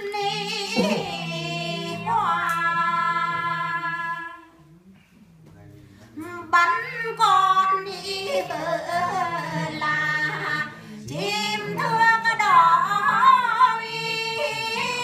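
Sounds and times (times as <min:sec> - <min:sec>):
women singing unaccompanied: 0:00.0 - 0:04.6, 0:06.2 - 0:15.0.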